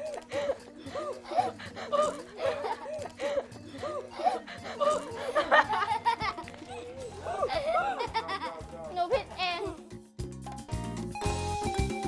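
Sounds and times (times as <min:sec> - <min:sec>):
children laughing: 0:00.0 - 0:09.8.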